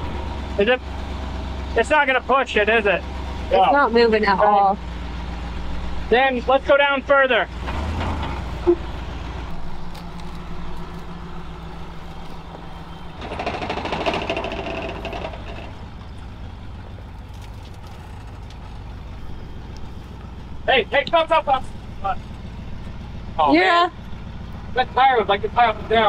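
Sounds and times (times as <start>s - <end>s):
truck engine idling: 0.0s - 26.0s.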